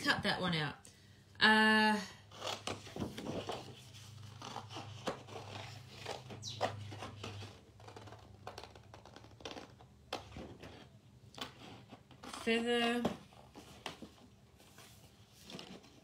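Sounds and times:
paper rustling: 2.5 - 10.8.

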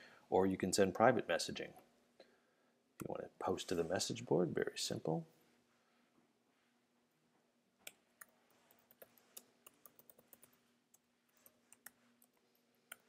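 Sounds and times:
faint typing on computer keyboard: 7.8 - 13.0.

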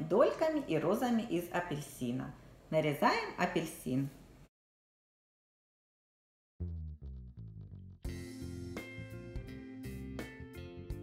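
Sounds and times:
background music with guitar and bass: 6.6 - 11.0.

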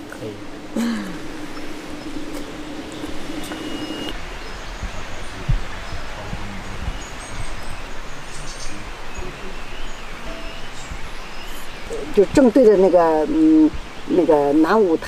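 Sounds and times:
wind through leafy trees: 0.0 - 15.0
faint bird chirps: 0.2 - 12.9.

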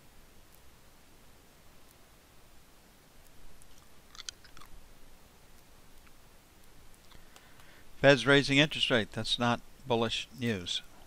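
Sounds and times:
faint small clicks and crackles: 0.4 - 0.8, 1.8 - 2.1, 2.9 - 7.9.

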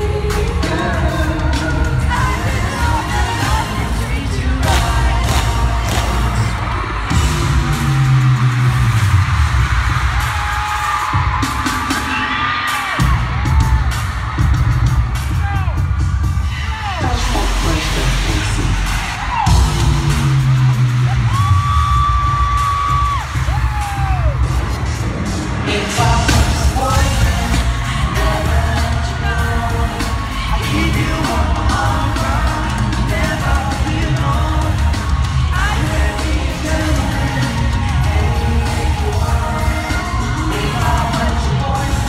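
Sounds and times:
loud pop concert music: 0.0 - 42.0.

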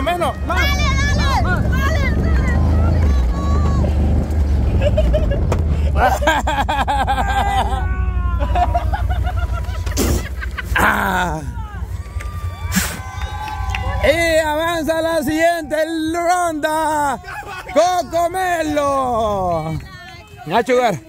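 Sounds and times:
onlookers shouting and cheering: 0.0 - 4.3, 6.9 - 9.9, 10.6 - 21.0
quad bike engine humming: 0.0 - 21.0.

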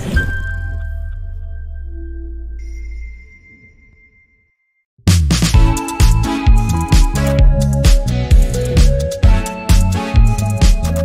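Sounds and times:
low held tone: 0.4 - 4.8
chime-like ringing tone: 0.4 - 4.9.

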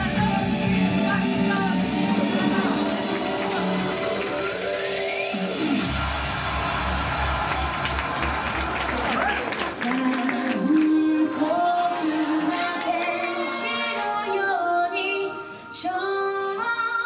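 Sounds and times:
heavy bass beat: 0.0 - 4.7, 5.4 - 8.6
music with held notes: 0.0 - 5.9.

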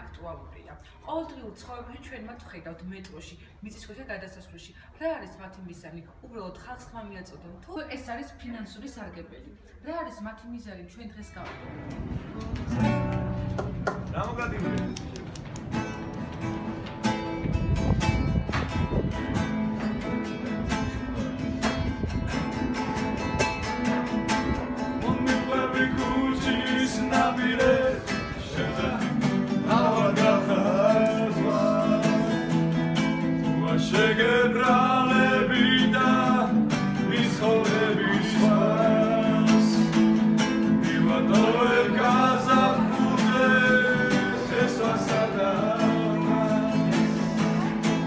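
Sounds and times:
classical guitar strummed chords: 11.4 - 48.0
man singing: 25.0 - 32.6, 33.4 - 40.0, 40.7 - 47.7.

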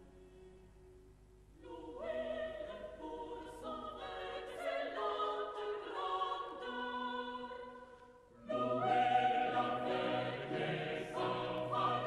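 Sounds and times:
choral music: 0.0 - 12.0.

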